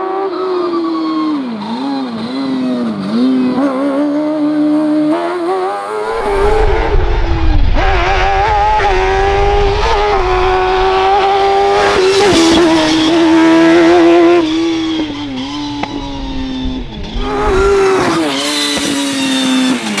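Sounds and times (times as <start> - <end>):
engine revving hard: 1.6 - 20.0.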